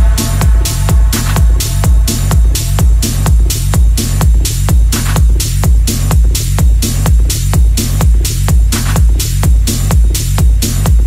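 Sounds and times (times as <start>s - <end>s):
bright hi-hats: 0.0s - 11.0s
deep bass line: 0.0s - 11.0s
techno kick drum: 0.0s - 11.0s.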